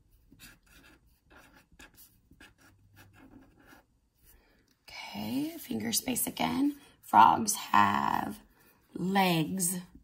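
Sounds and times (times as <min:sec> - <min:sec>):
felt-tip pen scratching on paper: 0:00.1 - 0:03.9.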